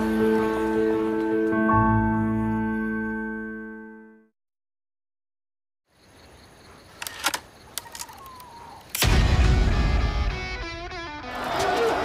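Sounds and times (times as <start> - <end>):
camera shutter clicks: 7.0 - 9.0.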